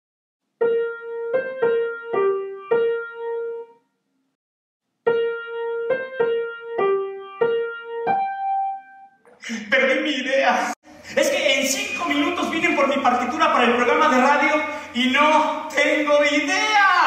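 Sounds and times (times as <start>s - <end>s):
keyboard melody: 0.6s - 4.0s, 5.0s - 9.2s.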